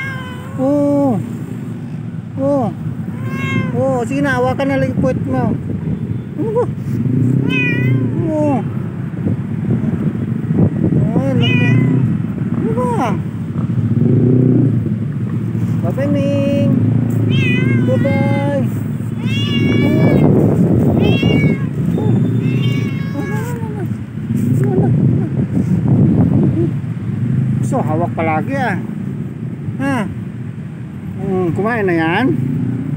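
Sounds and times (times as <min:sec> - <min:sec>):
cat meowing: 0:00.0 - 0:00.8, 0:03.1 - 0:04.2, 0:07.3 - 0:08.6, 0:11.2 - 0:12.2, 0:17.2 - 0:24.0.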